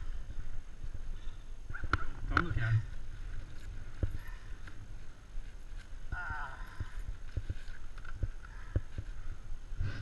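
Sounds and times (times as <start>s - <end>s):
rustling in backpack: 2.8s - 10.0s.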